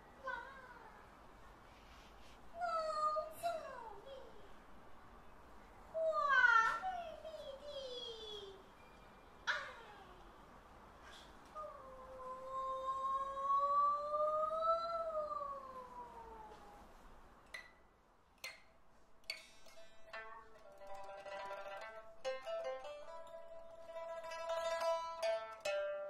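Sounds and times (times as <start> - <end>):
plucked pipa notes: 19.3 - 26.0.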